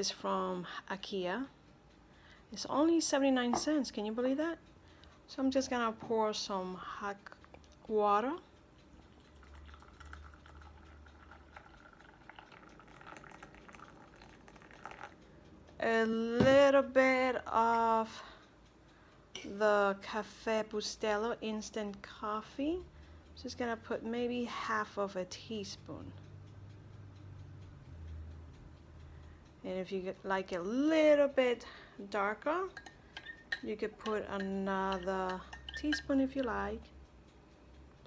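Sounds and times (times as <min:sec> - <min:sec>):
faint ticking: 0:00.0 - 0:38.0
hot water pouring into mug: 0:09.1 - 0:15.2.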